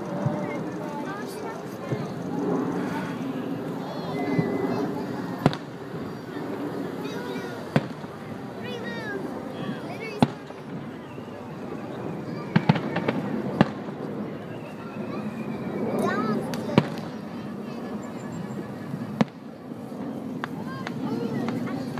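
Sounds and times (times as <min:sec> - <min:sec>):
fireworks bursting: 0:03.6 - 0:06.3, 0:07.1 - 0:09.0, 0:09.7 - 0:11.0, 0:12.3 - 0:14.0, 0:16.2 - 0:17.4, 0:18.9 - 0:19.6.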